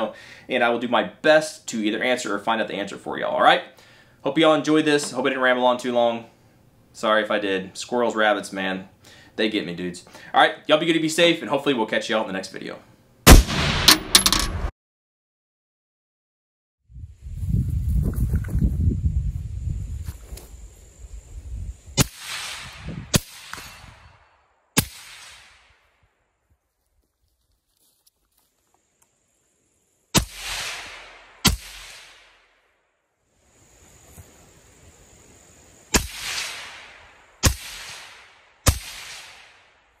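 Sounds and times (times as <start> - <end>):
gunshots with short echo: 13.3 - 14.7.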